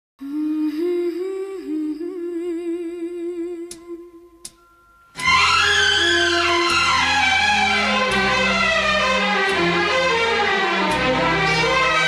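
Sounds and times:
woman humming a slow melody: 0.2s - 4.6s.

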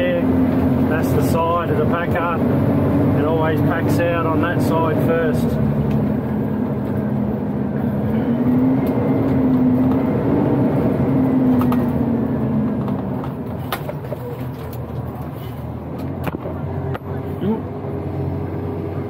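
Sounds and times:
diesel truck engine running: 0.0s - 19.0s.

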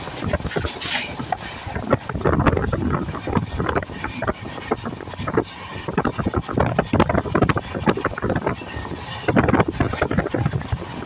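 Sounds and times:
train rattling clatter: 0.0s - 11.0s
wind buffeting microphone: 0.0s - 11.0s.

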